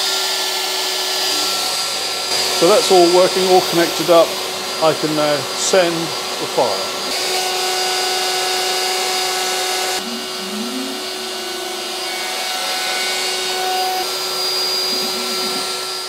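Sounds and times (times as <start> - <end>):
dust extractor rushing: 0.0 - 16.0
router whine: 0.0 - 16.0.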